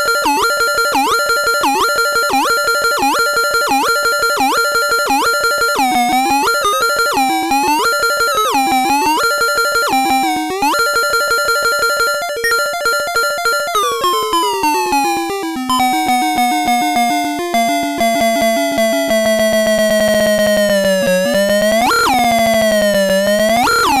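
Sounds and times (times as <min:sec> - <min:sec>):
glitchy electronic tones pulsing: 0:16.8 - 0:24.0.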